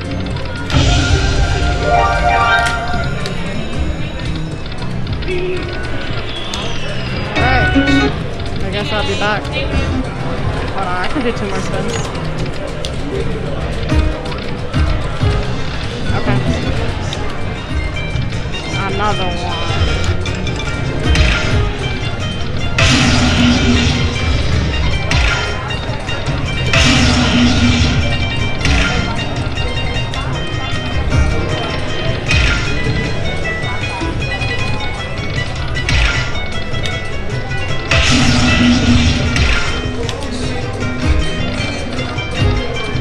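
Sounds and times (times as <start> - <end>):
slot machine bonus music: 0.7 - 4.4, 7.3 - 8.3, 22.7 - 31.1, 37.8 - 40.0.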